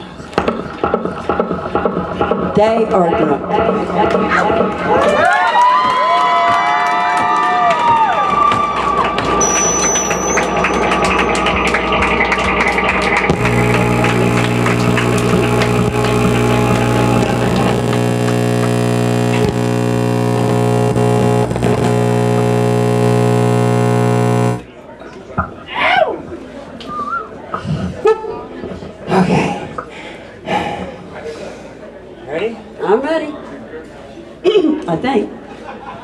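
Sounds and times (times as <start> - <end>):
crowd cheering and whooping: 4.9 - 11.9
distorted electronic drone: 9.4 - 24.7.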